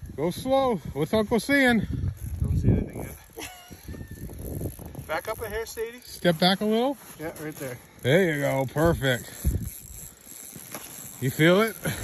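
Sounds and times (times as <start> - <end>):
wind rumbling on microphone: 0.0 - 5.8, 8.7 - 10.2.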